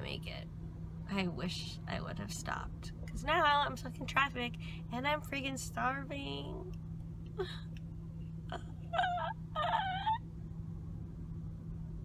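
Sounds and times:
car cabin hum: 0.0 - 12.0
woman making warbly noises: 8.5 - 10.2.

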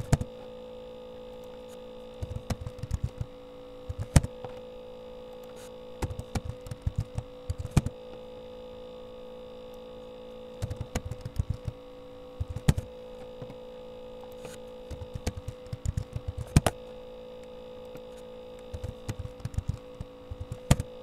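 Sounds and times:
steady electrical hum: 0.0 - 21.0
computer keyboard typing: 2.2 - 3.3, 3.9 - 4.3, 6.0 - 7.9, 10.6 - 11.8, 12.4 - 12.9, 14.9 - 16.8, 18.6 - 21.0.

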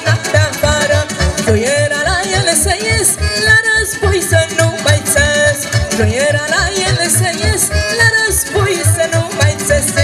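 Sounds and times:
live folk dance band: 0.0 - 10.0.

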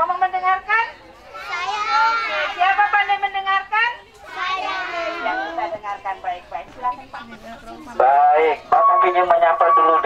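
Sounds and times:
children chattering: 0.6 - 8.1.

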